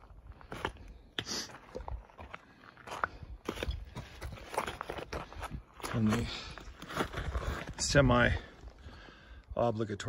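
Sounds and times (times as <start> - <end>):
footsteps crunching on rubble: 0.0 - 8.8.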